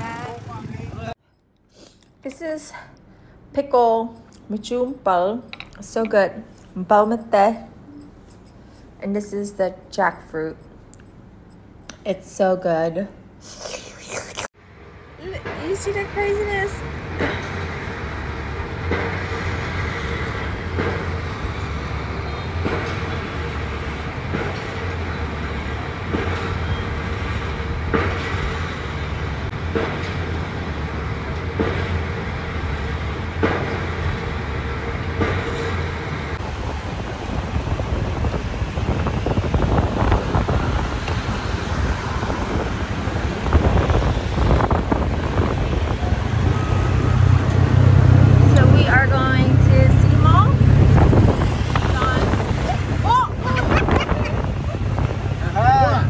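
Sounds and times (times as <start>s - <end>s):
motorbike engine and road rumble: 0.0s - 1.2s, 15.2s - 56.0s
distant city traffic hum: 0.0s - 56.0s
wind buffeting microphone: 36.3s - 56.0s.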